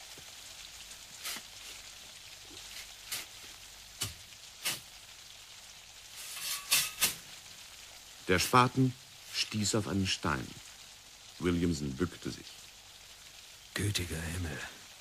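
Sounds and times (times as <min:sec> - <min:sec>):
steady hiss: 0:00.0 - 0:15.0.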